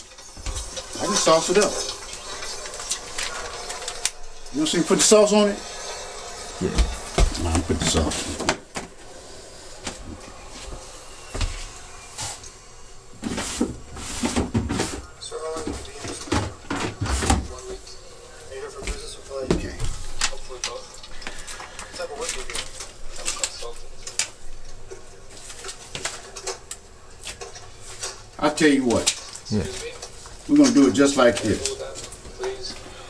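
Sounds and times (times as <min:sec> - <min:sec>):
paper and plastic sheets rustling: 0:00.2 - 0:05.6, 0:13.2 - 0:17.8, 0:18.6 - 0:32.8
indistinct voices murmuring: 0:00.8 - 0:13.1.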